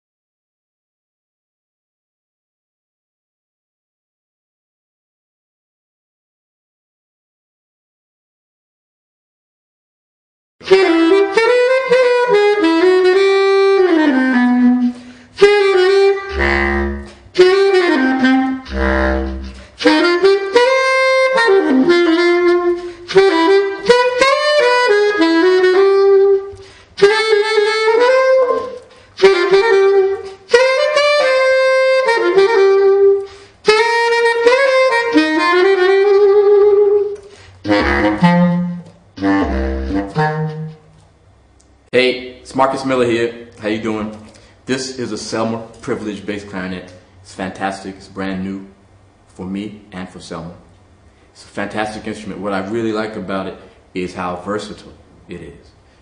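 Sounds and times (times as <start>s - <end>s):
solo bass clarinet jazz: 10.6s - 41.1s.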